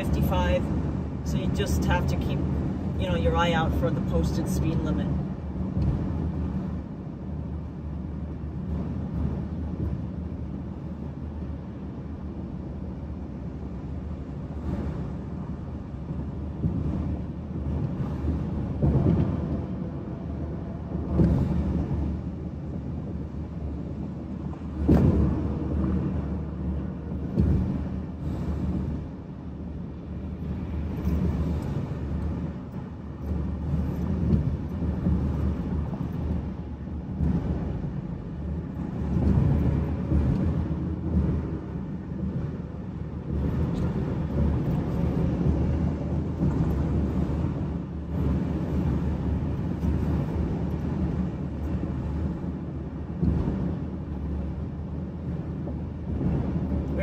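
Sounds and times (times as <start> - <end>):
road and tyre rumble: 0.0 - 57.0
wind noise: 0.0 - 57.0.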